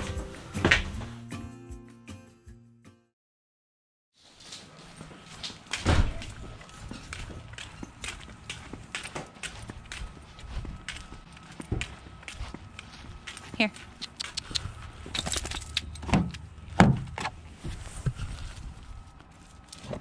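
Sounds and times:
footsteps on concrete: 0:04.2 - 0:15.1
dog claws clicking on concrete: 0:13.3 - 0:16.1.

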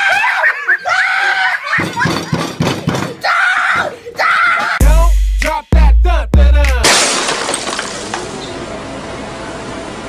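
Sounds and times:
boy screaming: 0:00.0 - 0:01.8, 0:03.2 - 0:04.8
hip hop music with heavy bass: 0:04.8 - 0:06.9.

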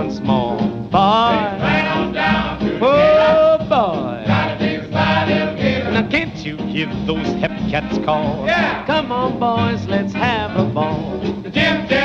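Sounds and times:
swing jazz music: 0:00.0 - 0:12.0.

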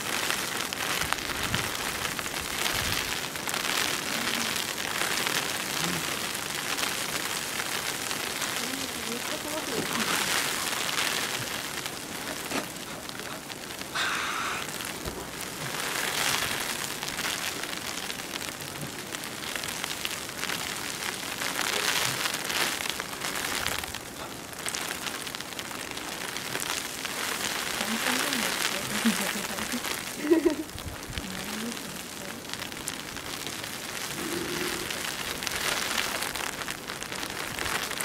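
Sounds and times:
steady rushing hiss: 0:00.0 - 0:38.0.

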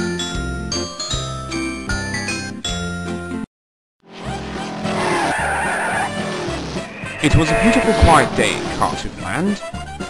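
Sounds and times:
glockenspiel-like mallet jingle: 0:00.0 - 0:03.3
rushing noise with falling tones: 0:06.6 - 0:09.0.

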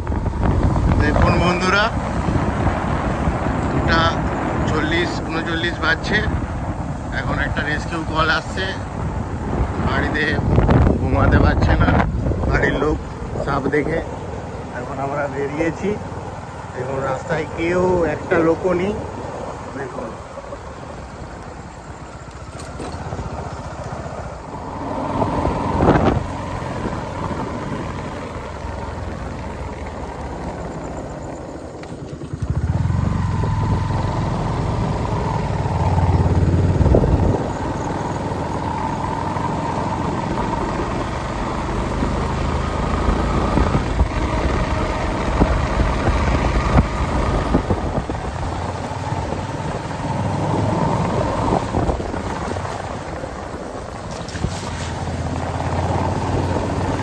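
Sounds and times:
motorcycle engine running: 0:00.0 - 0:04.7, 0:20.3 - 0:57.0
road noise: 0:00.0 - 0:57.0.

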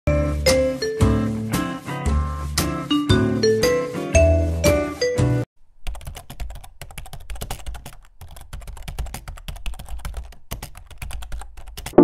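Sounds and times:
keyboard typing clatter: 0:05.9 - 0:12.0.

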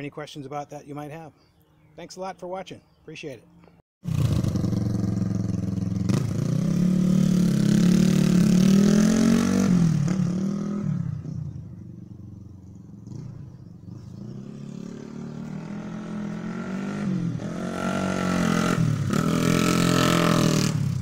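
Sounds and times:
motorcycle engine pulling away: 0:04.0 - 0:21.0.

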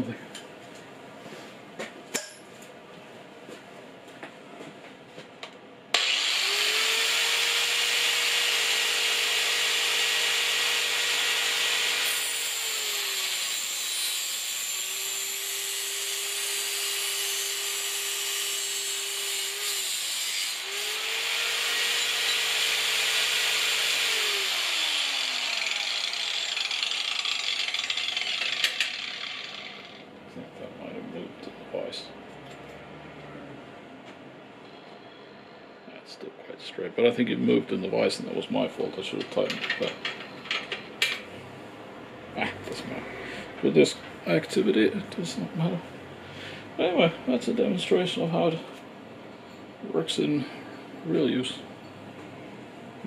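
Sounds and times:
angle grinder cutting pipe: 0:05.9 - 0:30.0.

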